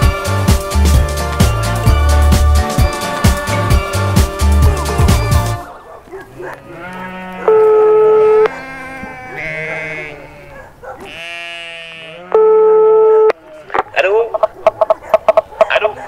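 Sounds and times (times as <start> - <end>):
sheep bleating: 6.4 - 14.0
loud steady tone: 7.5 - 8.5, 12.4 - 13.3.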